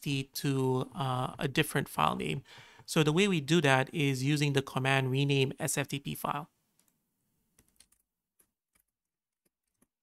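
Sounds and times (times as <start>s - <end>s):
computer keyboard typing: 7.6s - 8.0s.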